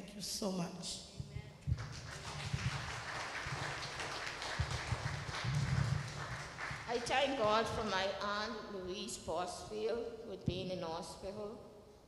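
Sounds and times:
crowd applauding: 1.6 - 7.9.

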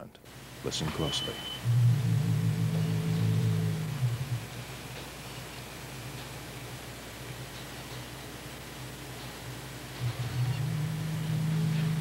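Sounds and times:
low droning hum: 0.3 - 12.0
thin high tone: 0.8 - 3.6.

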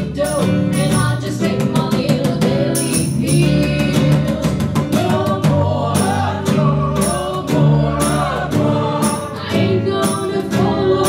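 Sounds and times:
live band playing: 0.0 - 11.0
women singing in harmony: 0.0 - 11.0.

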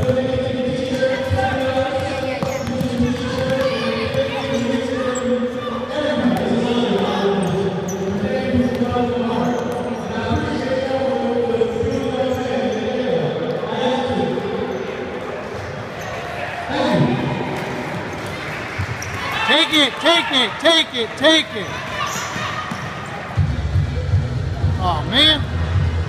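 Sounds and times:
basketball bouncing on hard court: 1.9 - 4.4.

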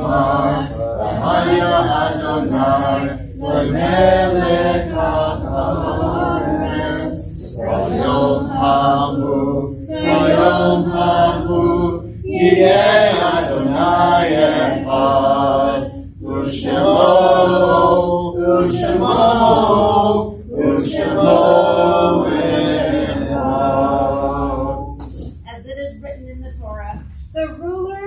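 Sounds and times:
voices chanting a prayer: 0.0 - 25.3.

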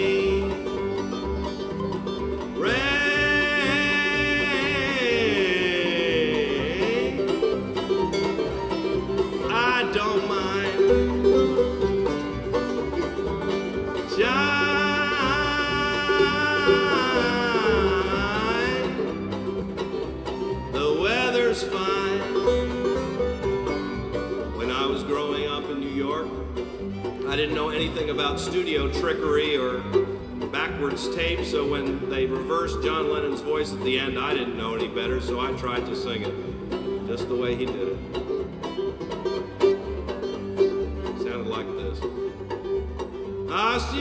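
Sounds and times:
banjo: 0.0 - 44.0
bowed fiddles: 0.0 - 44.0
guitars: 0.0 - 44.0
upright bass: 0.0 - 44.0.

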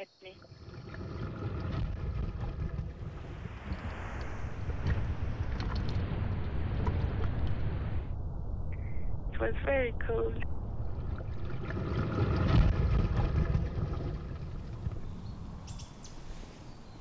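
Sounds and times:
churning water underwater: 0.4 - 8.6, 10.0 - 17.0.

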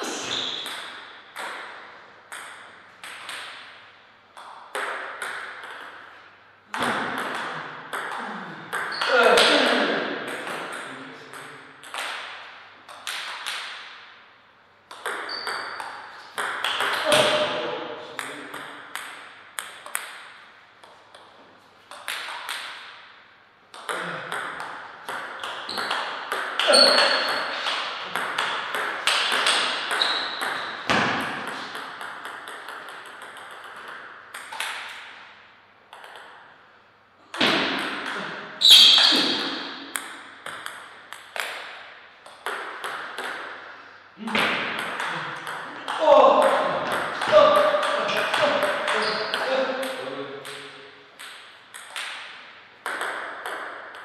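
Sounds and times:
table tennis ball clicking: 31.7 - 35.1, 35.9 - 36.4, 44.8 - 54.0.

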